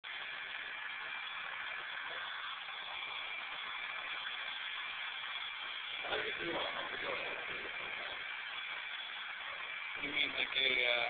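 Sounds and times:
electric drill whining: 0.1 - 11.0.

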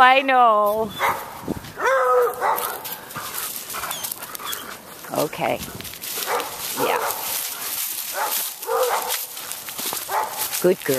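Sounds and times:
dry leaves rustling: 0.6 - 10.9.

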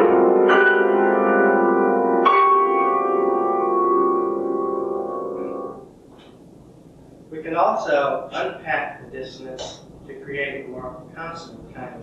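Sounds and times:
dissonant piano chord: 0.0 - 5.9.

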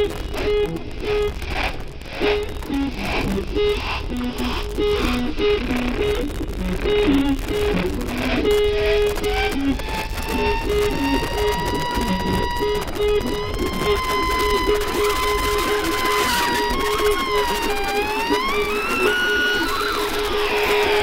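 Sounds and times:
electric guitar riff: 0.0 - 21.0.

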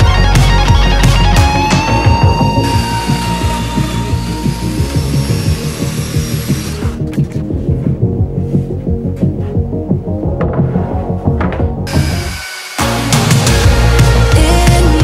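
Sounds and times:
background music with steady beat: 0.0 - 15.0
power joiner motor cutting: 1.0 - 7.1, 11.9 - 14.0.

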